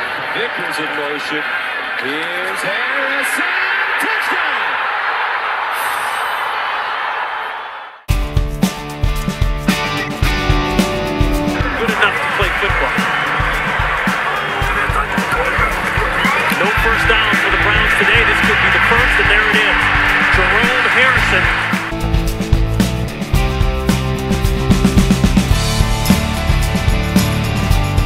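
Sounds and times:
large crowd cheering: 0.0 - 8.1, 10.7 - 23.4
rock music: 8.1 - 28.0.

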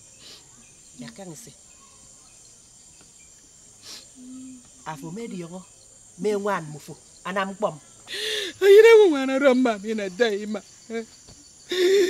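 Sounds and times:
insects droning high-pitched: 0.0 - 12.0
woman humming: 4.2 - 4.7, 11.7 - 12.0
woman speaking: 4.9 - 5.6, 8.6 - 11.0.

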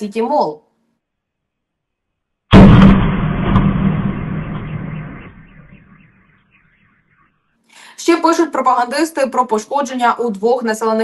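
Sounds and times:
loud explosion: 2.5 - 6.4.

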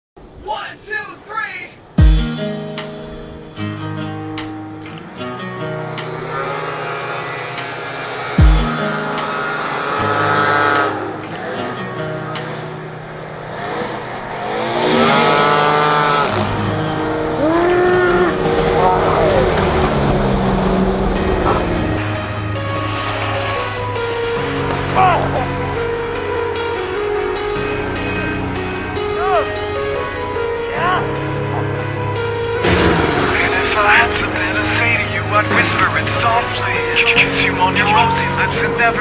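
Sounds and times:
background music: 0.2 - 39.0
snowmobile engine revving: 7.8 - 11.7, 13.4 - 26.1, 32.6 - 39.0.

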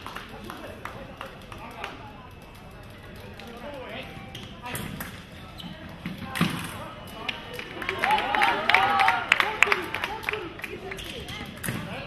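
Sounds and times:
voices in large hall: 0.0 - 12.0.

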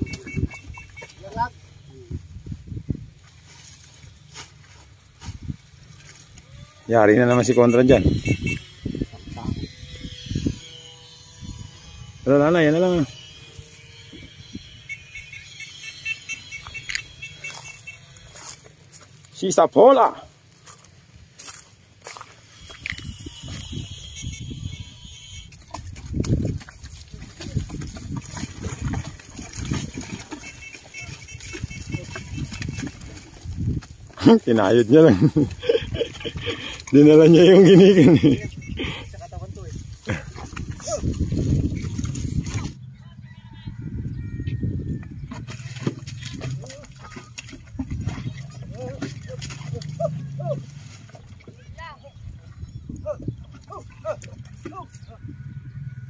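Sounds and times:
people shouting calls: 6.4 - 11.2, 29.7 - 33.0, 48.6 - 50.8, 53.0 - 55.5
water buffalo straining breaths: 35.4 - 37.0, 38.6 - 39.2, 39.9 - 41.5.

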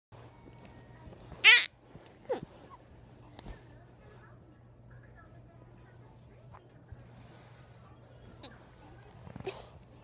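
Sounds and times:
child squealing: 1.4 - 1.7.

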